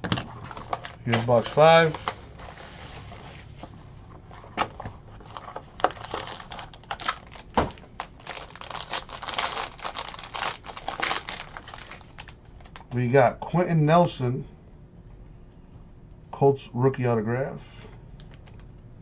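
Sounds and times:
foil pack tearing and crinkling: 0.1s - 3.2s, 5.2s - 12.9s.

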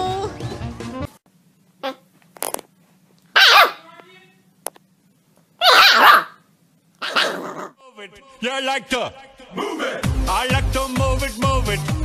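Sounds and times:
dog barking: 3.4s - 3.8s, 5.6s - 6.4s, 7.0s - 7.7s.

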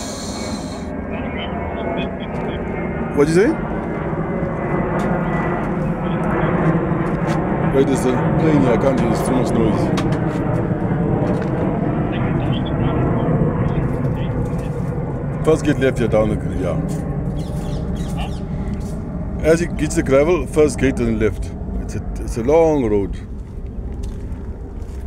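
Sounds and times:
airplane engines overhead: 0.0s - 25.0s.

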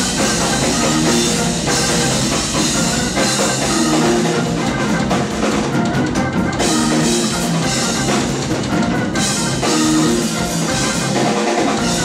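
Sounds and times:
drum kit: 0.0s - 12.0s
electric bass: 0.0s - 12.0s
keyboards: 0.0s - 12.0s.

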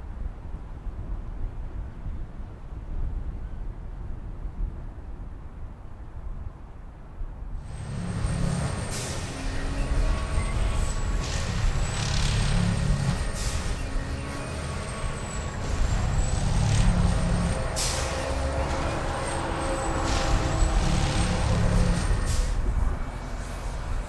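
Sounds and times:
thin high whine: 7.6s - 22.6s
diesel engine running: 7.6s - 24.0s
sharp air hisses: 8.7s - 9.7s, 13.2s - 14.0s, 17.8s - 18.5s.

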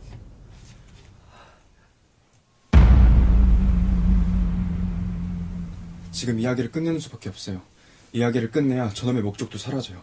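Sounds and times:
deep low rumble: 2.8s - 6.6s
steady low hum: 2.8s - 6.7s.

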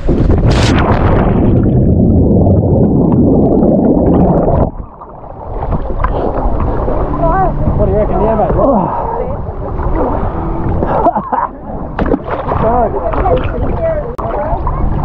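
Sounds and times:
underwater rush of bubbles: 0.0s - 15.0s
wind on microphone: 0.0s - 15.0s
lapping water: 8.2s - 15.0s
splash into water: 12.0s - 14.8s.

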